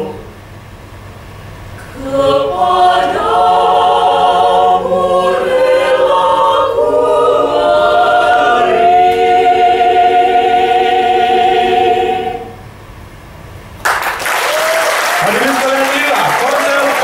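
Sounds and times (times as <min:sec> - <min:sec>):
a cappella ensemble singing: 0:00.0 - 0:00.4, 0:01.8 - 0:12.8.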